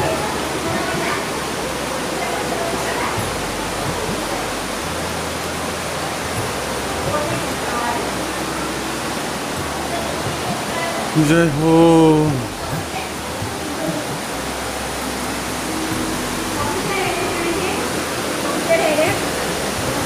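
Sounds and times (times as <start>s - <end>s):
faint voices: 0.0s - 20.0s
flowing water rushing: 0.0s - 20.0s.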